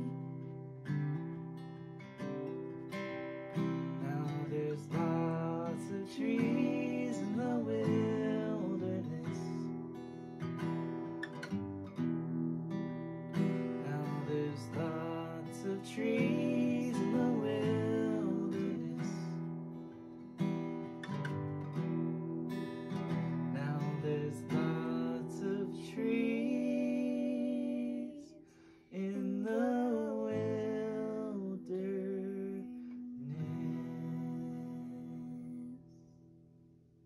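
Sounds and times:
acoustic guitar strumming chords: 0.0s - 36.3s
man singing: 4.0s - 9.8s, 13.7s - 19.5s, 23.5s - 35.9s.

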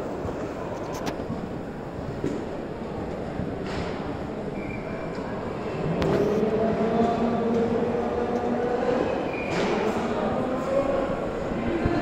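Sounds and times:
low rumble of a large hall: 0.0s - 12.0s.

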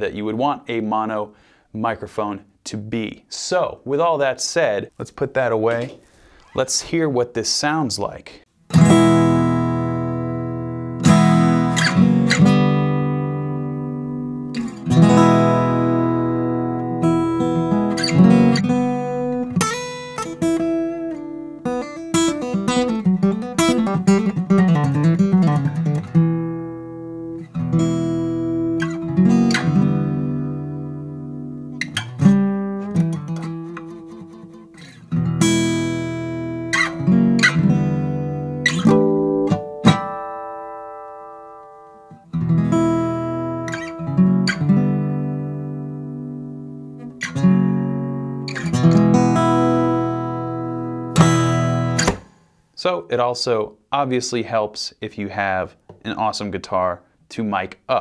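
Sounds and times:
acoustic guitar riff: 8.6s - 52.7s.

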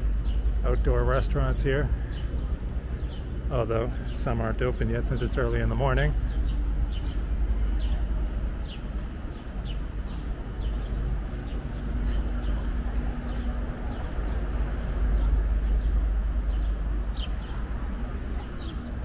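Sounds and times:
low rumble of traffic: 0.0s - 19.0s
small birds chirping: 0.0s - 19.0s.

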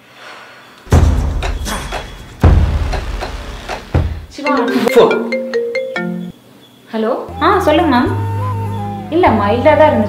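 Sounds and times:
phone ringtone melody: 4.4s - 6.4s.

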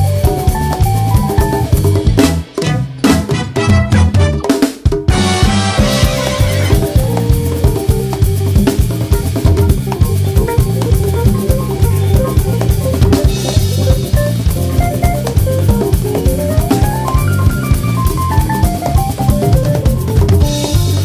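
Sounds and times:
congas: 0.0s - 21.0s
latin band groove: 0.0s - 21.0s
cymbal crash: 5.1s - 7.6s
rising melody run: 5.1s - 21.0s.

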